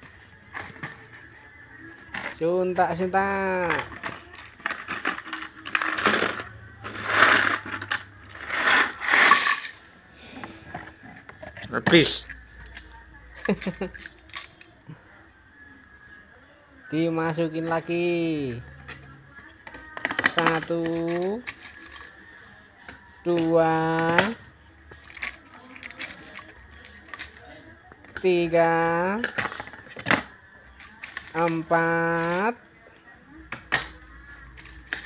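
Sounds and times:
plastic toy rattling: 2.0 - 9.7, 13.4 - 14.9, 18.5 - 32.6, 33.5 - 35.0.

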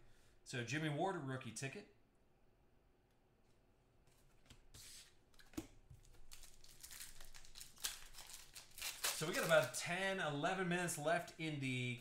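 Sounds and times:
foil wrapper tearing and crinkling: 6.1 - 9.9.

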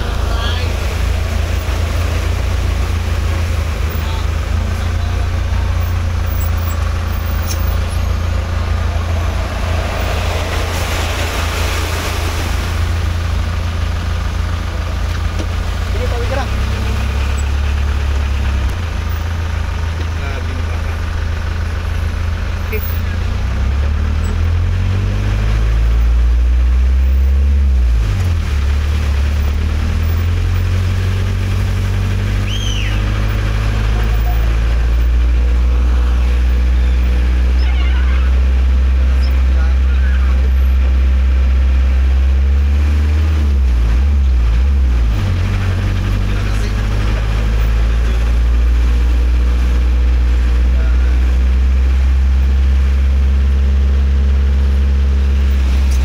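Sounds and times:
vehicle engine humming: 0.0 - 56.0.

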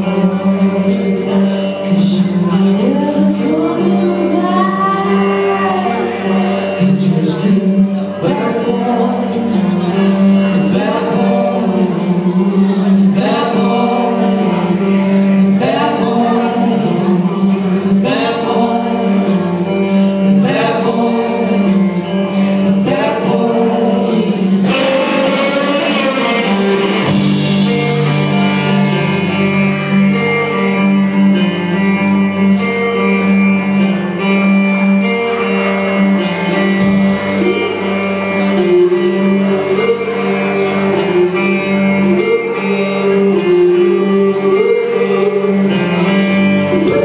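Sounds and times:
drums: 0.0 - 47.0
electric guitars: 0.0 - 47.0
live band playing: 0.0 - 47.0
person singing: 0.0 - 47.0.

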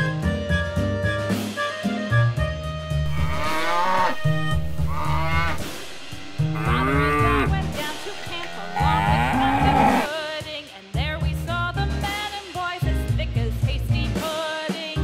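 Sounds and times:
music with a steady beat: 0.0 - 15.0
cattle mooing: 3.1 - 10.1.

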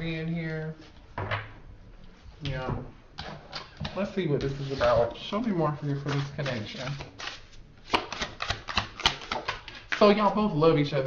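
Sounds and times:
playing cards being shuffled: 5.8 - 10.1.

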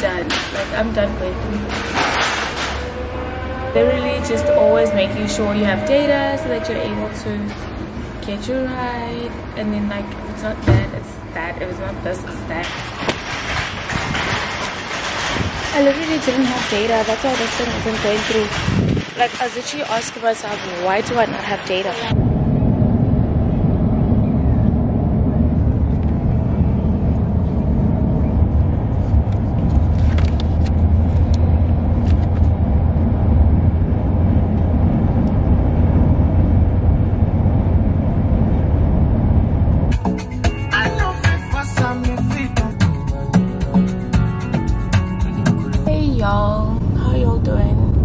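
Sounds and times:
road and engine rumble in car: 20.6 - 48.0.

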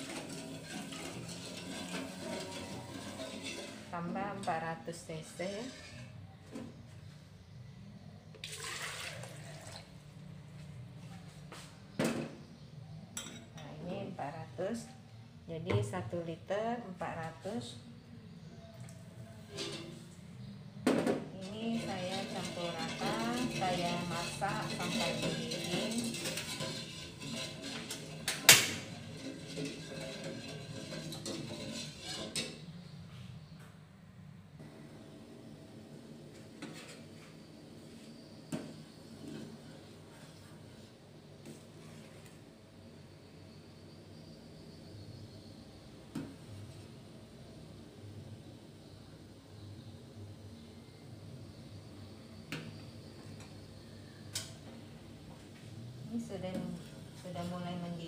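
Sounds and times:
ladle stirring liquid in saucepan: 0.0 - 4.6, 19.3 - 20.2, 21.4 - 32.9, 37.9 - 42.3.

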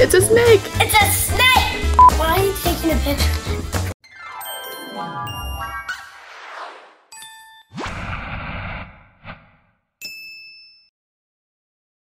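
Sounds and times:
chime: 4.2 - 6.0, 7.1 - 7.7, 10.0 - 10.9
quick rising swoop: 6.1 - 7.1, 7.8 - 9.7.

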